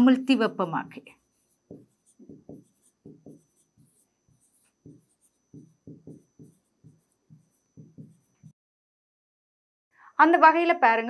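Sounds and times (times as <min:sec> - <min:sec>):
pen strokes on writing board: 0:00.4 - 0:08.6.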